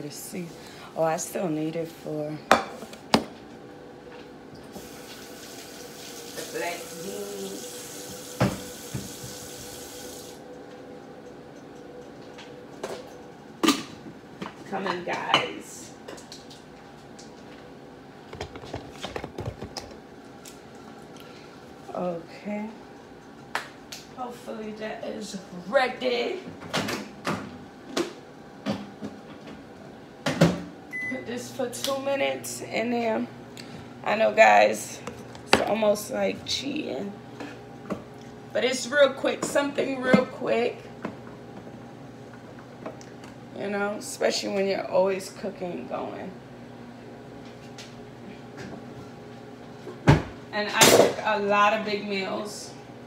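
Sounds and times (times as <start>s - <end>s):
faint steady hum: 0.0s - 53.0s
kitchen tap running: 4.6s - 10.4s.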